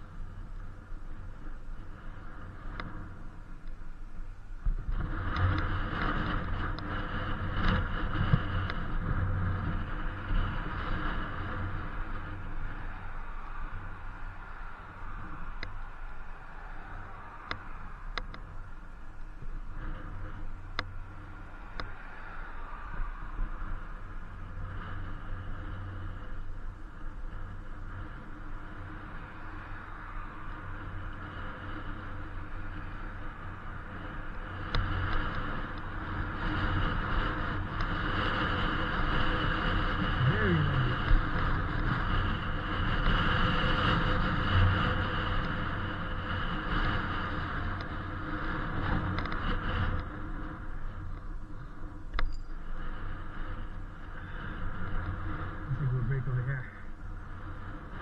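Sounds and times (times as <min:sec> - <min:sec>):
steady hum: 0:00.0 - 0:58.0
wind rushing on microphone: 0:00.0 - 0:58.0.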